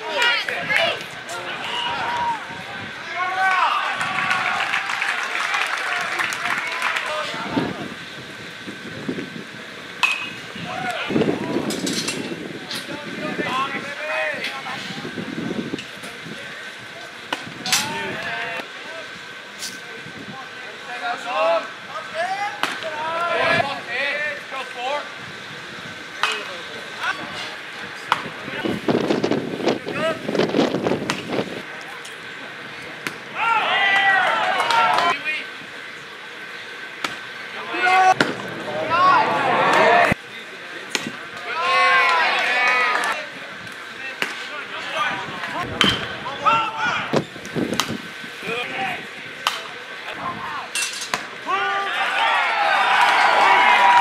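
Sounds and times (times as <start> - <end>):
people calling out and shouting: 0.0 - 5.0, 20.4 - 25.2, 37.5 - 40.2, 41.4 - 43.4.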